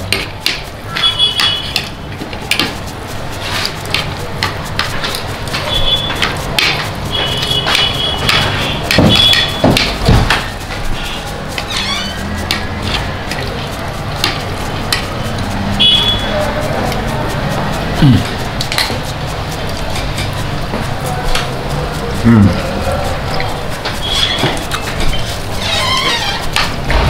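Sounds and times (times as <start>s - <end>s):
spoons scraping metal platter: 0.0s - 27.0s.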